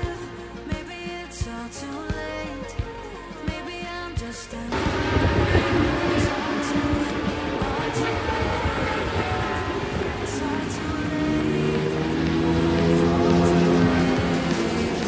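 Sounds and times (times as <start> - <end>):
background music: 0.0 - 15.0
motorcycle engine rumbling: 4.7 - 15.0.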